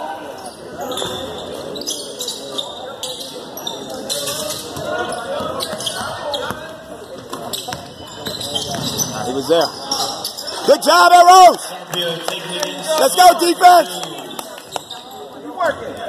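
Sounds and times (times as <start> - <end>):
spectators chattering: 0.0 - 16.0.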